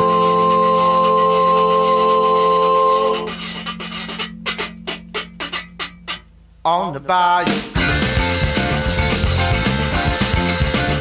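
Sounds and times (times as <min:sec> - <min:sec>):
rubboard scraping a rhythm: 0:00.0 - 0:06.4, 0:07.4 - 0:11.0
low held note: 0:00.0 - 0:06.6
accordion chord: 0:07.8 - 0:11.0.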